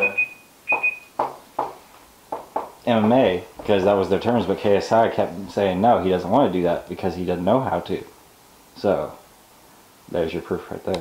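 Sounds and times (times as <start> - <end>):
high electronic beep pulses: 0.0 - 1.2.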